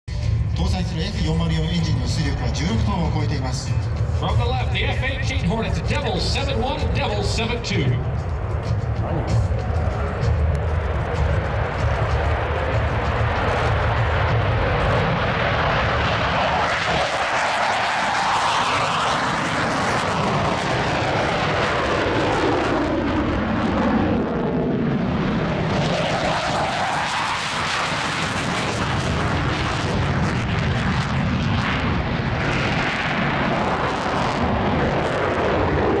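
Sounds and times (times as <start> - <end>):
jet engines roaring: 0.1 - 36.0.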